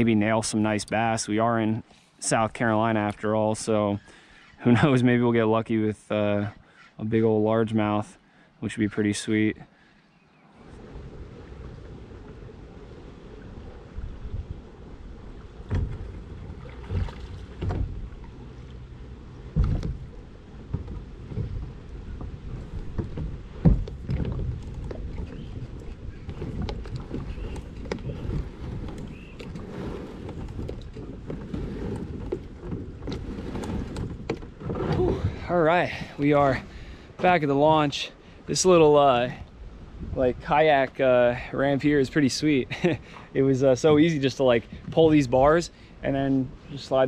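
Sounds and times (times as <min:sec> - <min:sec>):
wind: 0:00.0 - 0:47.0
low rumble of water: 0:07.0 - 0:47.0
knocks and thumps on kayak hull: 0:15.5 - 0:37.6.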